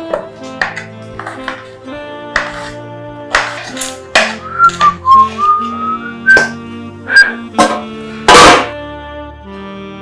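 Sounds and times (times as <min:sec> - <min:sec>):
man whistling a tune: 0:04.4 - 0:07.5.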